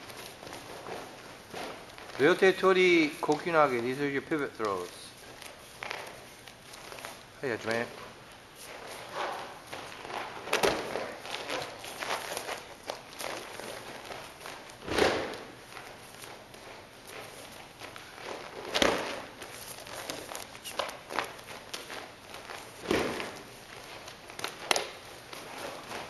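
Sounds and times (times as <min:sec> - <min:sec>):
bare feet shuffling on mats: 0:00.0 - 0:26.0
body thudding onto mat: 0:14.8 - 0:15.5.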